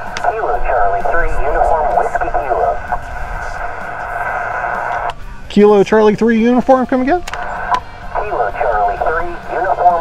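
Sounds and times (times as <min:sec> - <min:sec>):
narrow-band radio voice: 0:00.0 - 0:04.6, 0:07.3 - 0:10.0
radio band noise hiss: 0:00.0 - 0:10.0.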